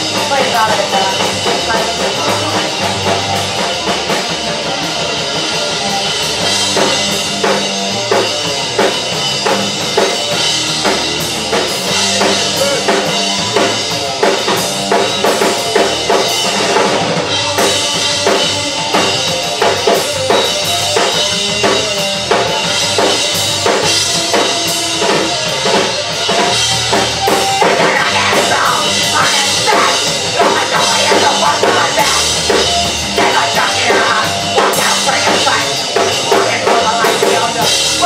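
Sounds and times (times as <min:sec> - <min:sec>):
drum kit beat: 0:00.0 - 0:38.0
electric bass guitar: 0:00.0 - 0:38.0
live punk band playing: 0:00.0 - 0:38.0.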